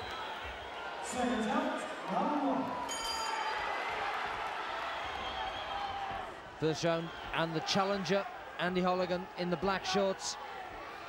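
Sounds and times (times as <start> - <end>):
crowd cheering: 0.0 - 11.0
boxing ring bell: 2.9 - 3.7.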